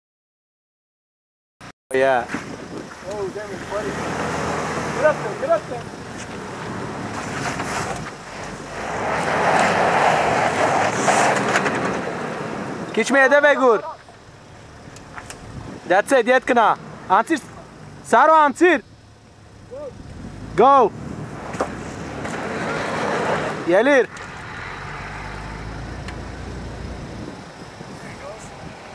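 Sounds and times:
off-road vehicle engine running low: 0:02.2 - 0:28.9.

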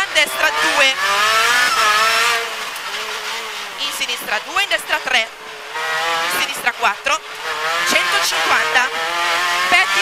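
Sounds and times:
rally car engine revving: 0:00.0 - 0:10.0.

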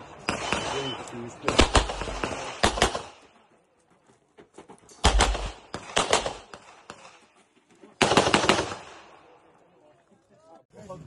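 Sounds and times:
pistol shots echoing: 0:00.0 - 0:03.3, 0:05.0 - 0:07.2, 0:08.0 - 0:09.3.

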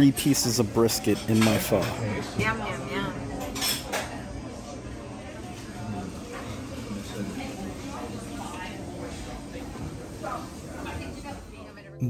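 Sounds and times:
low room murmur: 0:00.0 - 0:12.0
cutlery and dishes clinking: 0:00.4 - 0:02.0, 0:03.4 - 0:04.2.

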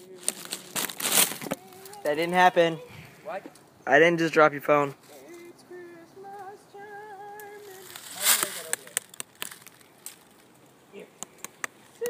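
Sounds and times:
rustling crunch of leaves: 0:00.0 - 0:02.6, 0:06.2 - 0:10.7.

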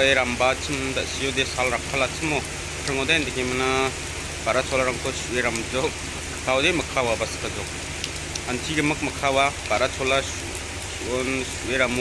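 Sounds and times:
man talking: 0:00.0 - 0:07.7, 0:08.4 - 0:10.4, 0:11.0 - 0:12.0
rain falling: 0:00.0 - 0:12.0.

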